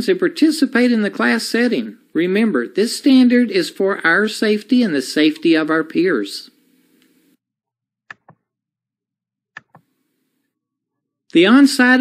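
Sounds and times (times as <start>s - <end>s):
computer mouse click: 8.1s - 8.4s, 9.6s - 9.9s.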